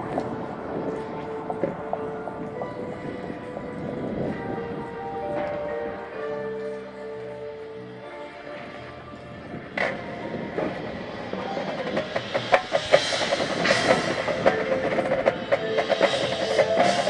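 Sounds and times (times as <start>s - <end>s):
drums and struck percussion: 9.8s - 17.0s.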